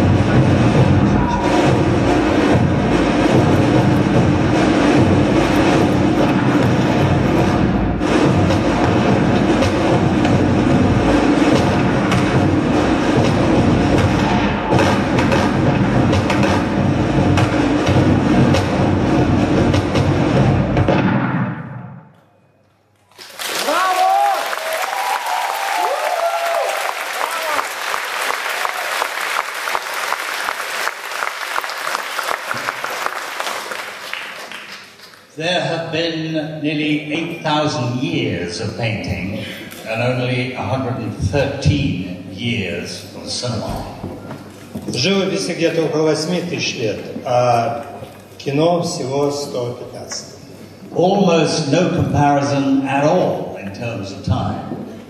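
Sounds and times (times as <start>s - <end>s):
film soundtrack music: 0.0s - 22.8s
audience applauding: 23.1s - 35.3s.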